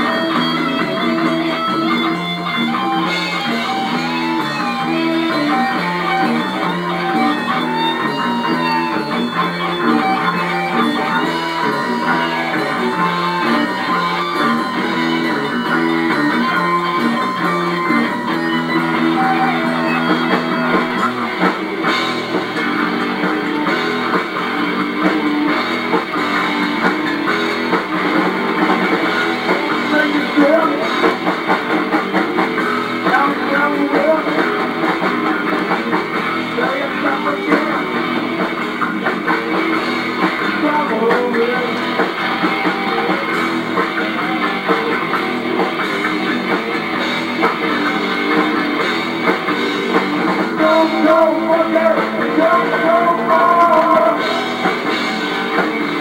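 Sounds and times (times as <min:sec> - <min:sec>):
rock band playing live: 0:00.0 - 0:56.0.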